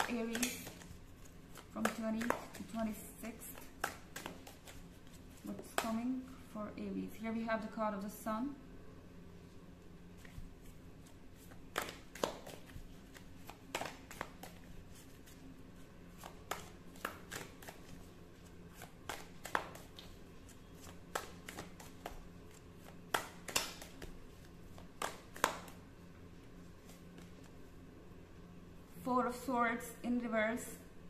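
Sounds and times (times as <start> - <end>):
cards being shuffled: 0.0 - 6.0, 10.2 - 15.5, 16.1 - 25.8.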